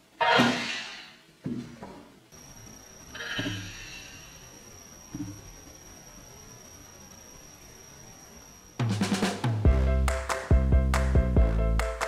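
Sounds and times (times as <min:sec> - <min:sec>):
thin steady high tone: 0:02.3 - 0:08.9.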